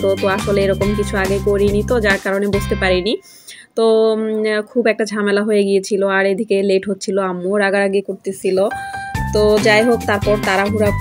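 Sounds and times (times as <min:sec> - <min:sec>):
background music: 0:00.0 - 0:03.8, 0:08.2 - 0:11.0
woman talking: 0:00.0 - 0:11.0
bell-like chime ding: 0:08.7 - 0:09.8.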